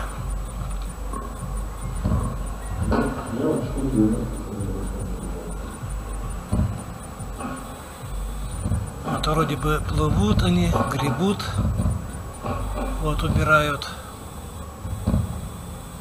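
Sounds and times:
faint high ticking: 0.0 - 16.0
low city rumble: 0.0 - 16.0
music over public-address system: 0.0 - 16.0.

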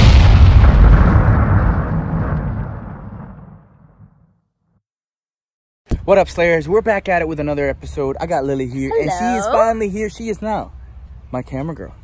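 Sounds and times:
deep rumbling explosion boom: 0.0 - 4.4.

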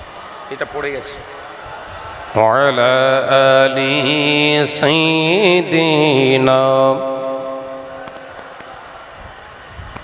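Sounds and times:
man chanting a hymn: 2.3 - 8.6.

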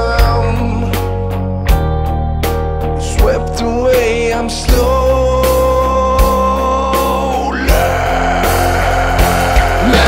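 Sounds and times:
heavy metal band music: 0.0 - 10.0.

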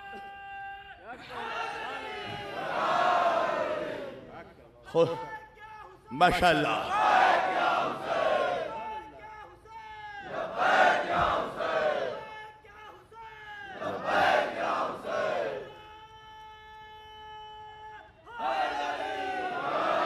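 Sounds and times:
crowd shouting in unison: 1.1 - 4.2, 6.6 - 9.0, 10.2 - 12.3, 13.6 - 15.7, 18.4 - 20.0.

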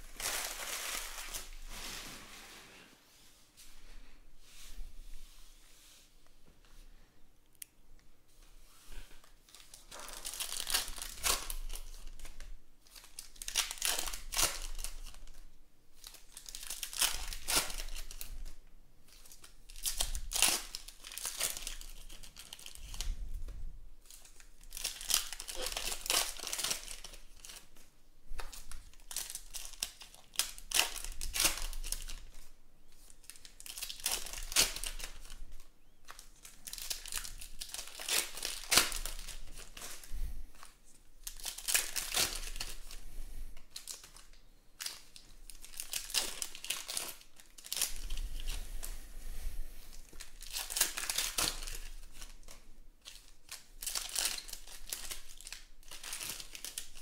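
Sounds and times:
foil packs tearing and crinkling: 0.0 - 2.0, 9.5 - 15.4, 16.0 - 18.3, 19.1 - 23.1, 24.1 - 27.6, 28.5 - 32.4, 33.2 - 35.4, 36.1 - 40.1, 41.2 - 43.0, 43.7 - 48.5, 50.0 - 57.0.

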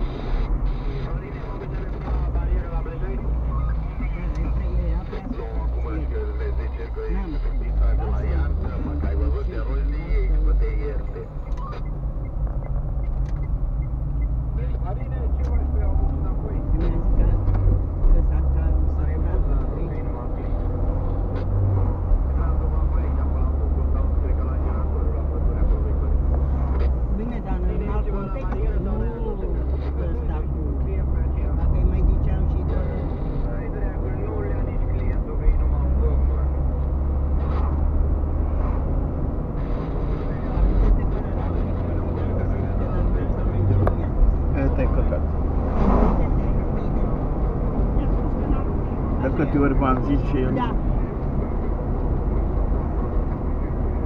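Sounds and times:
car interior engine and tyre rumble: 0.0 - 54.0
indistinct voices: 0.0 - 54.0.

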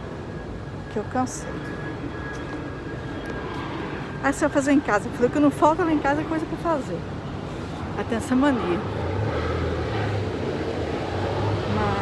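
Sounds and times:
engine rumble: 0.0 - 12.0
faint high whine: 0.0 - 12.0.

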